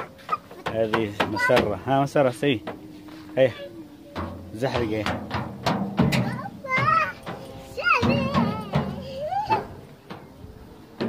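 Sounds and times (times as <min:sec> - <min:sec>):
children calling and squealing: 0:00.0 - 0:05.2, 0:06.0 - 0:11.0.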